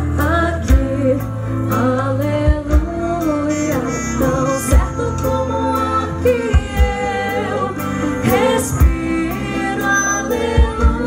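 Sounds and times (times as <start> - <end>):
woman singing lead: 0.0 - 11.0
worship band playing: 0.0 - 11.0.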